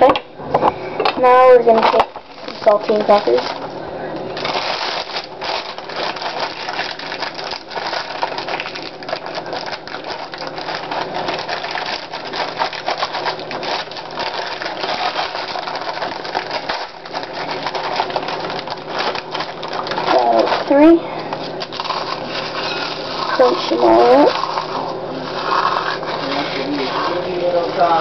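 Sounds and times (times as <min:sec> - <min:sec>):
crackers being crushed by hand: 0:01.2 - 0:28.0.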